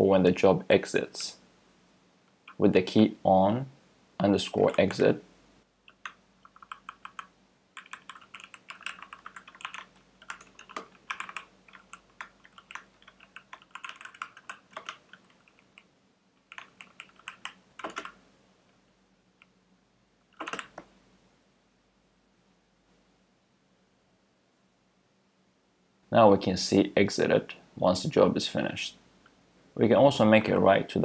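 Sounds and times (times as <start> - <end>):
computer keyboard typing: 4.6 - 5.0, 5.9 - 18.2, 20.4 - 20.9.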